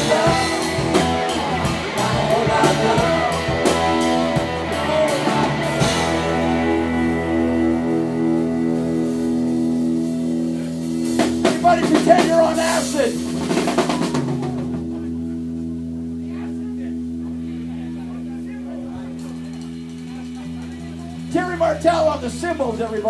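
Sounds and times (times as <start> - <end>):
drum and cymbal hits: 0.0 - 15.3
electric guitar chord ringing: 0.0 - 23.0.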